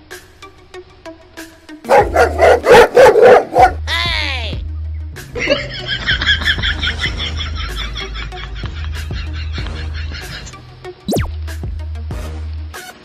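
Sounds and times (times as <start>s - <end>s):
background music: 0.0s - 13.0s
dog barking loudly: 1.9s - 3.8s
fast high repeated sound: 11.1s - 11.3s.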